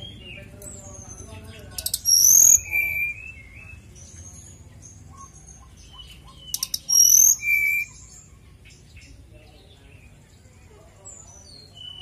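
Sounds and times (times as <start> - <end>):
bird singing whistled notes: 0.0 - 12.0
soft bird chirps: 0.0 - 12.0.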